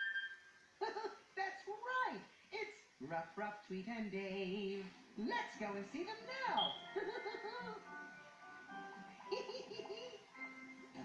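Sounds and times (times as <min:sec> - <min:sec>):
cartoon music from television: 0:00.0 - 0:00.8, 0:03.2 - 0:11.0
giggling: 0:00.8 - 0:01.3, 0:06.9 - 0:07.9, 0:09.2 - 0:10.3.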